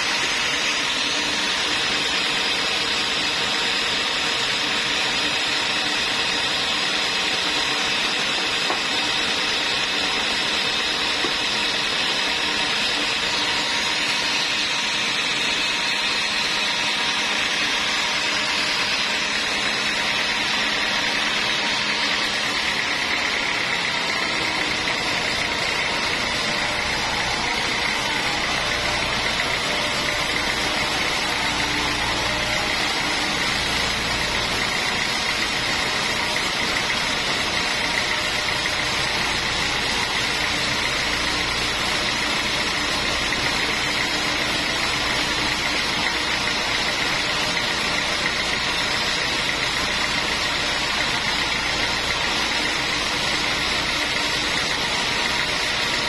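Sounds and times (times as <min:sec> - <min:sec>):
band saw cutting timber: 0:00.0 - 0:56.0
engine driving saw: 0:00.0 - 0:56.0.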